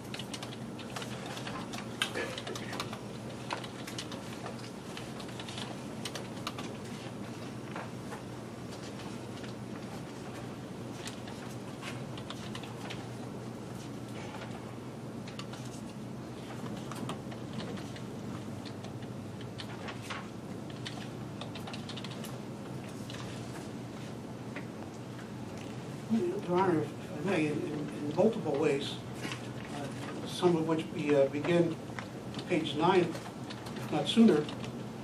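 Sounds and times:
keyboard typing clicks: 0.0s - 6.8s, 12.2s - 13.0s, 20.7s - 22.4s
computer keyboard typing: 0.0s - 13.1s, 15.2s - 23.4s, 31.0s - 34.8s
low room hum: 0.0s - 35.0s.

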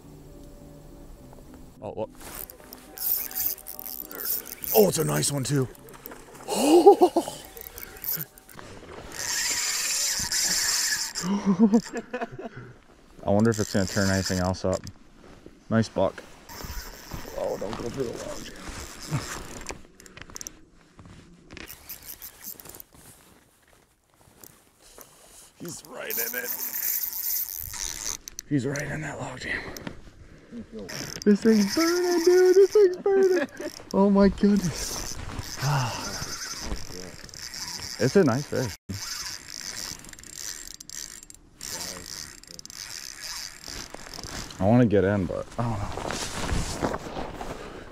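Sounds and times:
rustling clothing: 2.2s - 4.9s, 20.7s - 25.8s, 45.4s - 47.9s
fishing reel clicks and scrapes: 2.2s - 6.3s, 7.3s - 12.0s, 13.3s - 14.9s, 16.5s - 20.6s, 21.6s - 22.9s, 24.8s - 28.9s, 30.9s - 44.6s.

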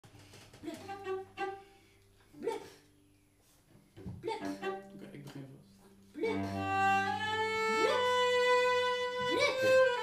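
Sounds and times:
cello being bowed: 0.6s - 2.7s, 3.9s - 10.0s.

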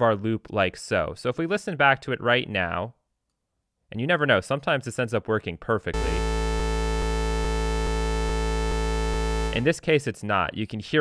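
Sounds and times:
sustained sawtooth synthesizer tone: 6.0s - 9.7s.

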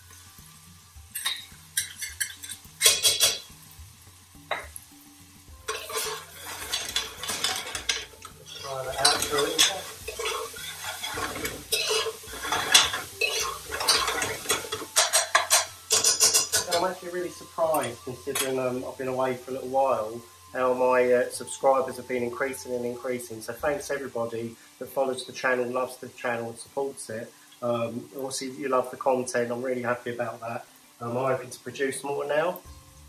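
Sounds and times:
paste and onions sizzling: 0.0s - 33.0s
metal ladle scraping pot: 1.1s - 3.5s, 5.6s - 16.9s.

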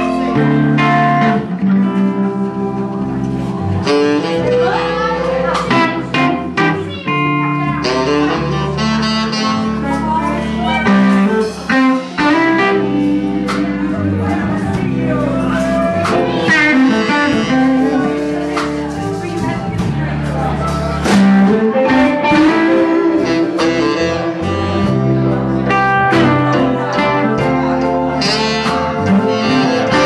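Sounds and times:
electric guitar: 0.0s - 30.0s
live blues-rock band playing: 0.0s - 30.0s
saxophone: 0.0s - 30.0s.

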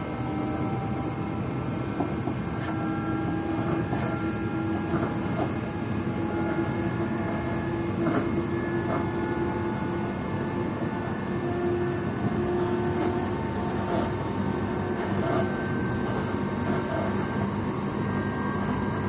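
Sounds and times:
train wheels rumbling on rails: 0.0s - 19.0s.

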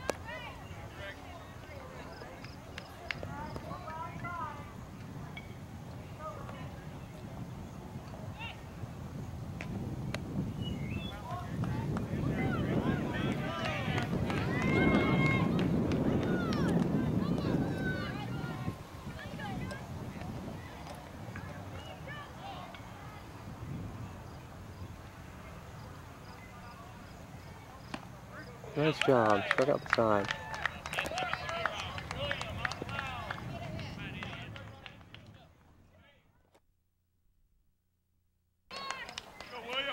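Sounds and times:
distant players shouting: 11.0s - 23.4s, 25.8s - 36.2s, 38.7s - 39.9s
crowd shouting: 11.2s - 19.8s.

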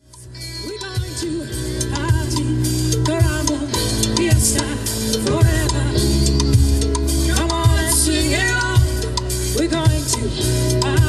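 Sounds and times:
band music with drums: 0.0s - 11.0s.

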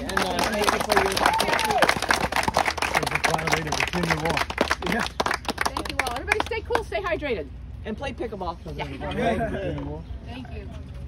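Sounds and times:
small group applauding: 0.0s - 6.9s.

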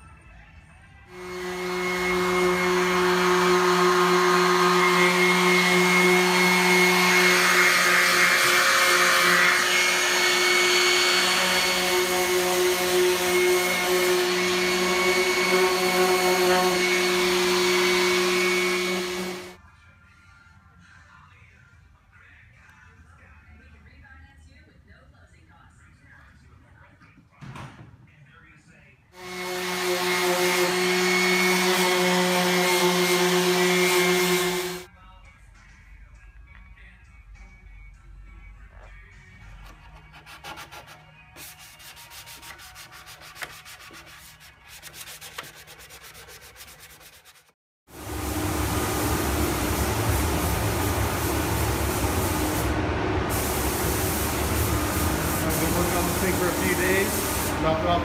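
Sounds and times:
noisy machine sound: 1.1s - 19.6s, 29.2s - 34.9s, 47.9s - 58.0s
electric sander whining: 1.2s - 19.6s, 29.2s - 34.9s
hand-sanding strokes: 1.2s - 19.6s, 29.2s - 34.9s, 39.7s - 52.7s, 53.3s - 58.0s.

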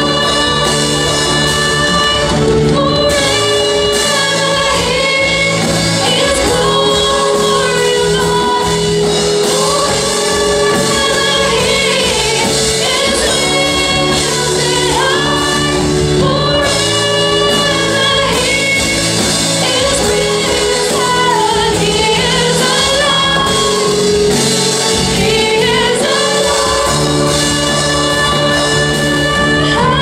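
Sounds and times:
woman singing into microphone: 0.0s - 30.0s
worship band playing: 0.0s - 30.0s.

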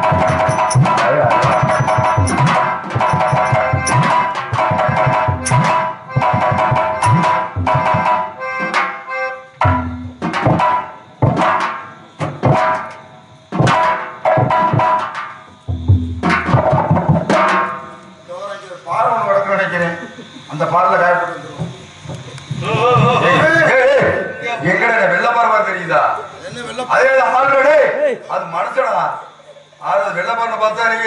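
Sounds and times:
tabla drumming: 0.0s - 18.0s, 21.6s - 24.8s.

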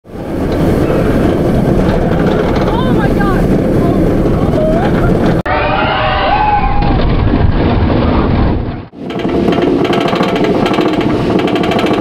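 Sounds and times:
rush of wind: 0.0s - 12.0s
roller coaster track rumble: 0.1s - 12.0s.

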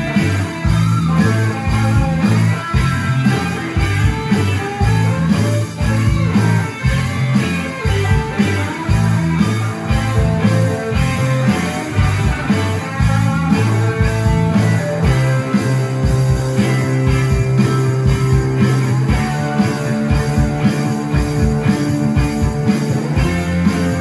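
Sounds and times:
electric guitars and bass riffing: 0.0s - 24.0s
steady drum beat: 0.0s - 24.0s.

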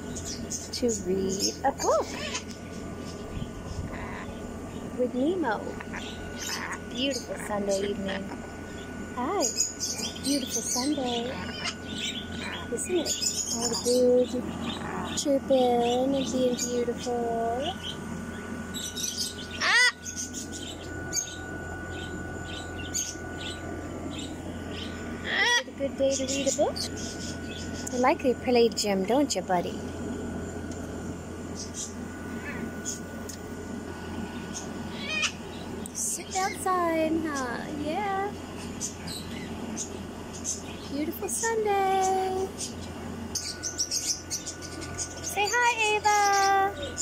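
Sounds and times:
birds chirping: 0.0s - 47.0s.

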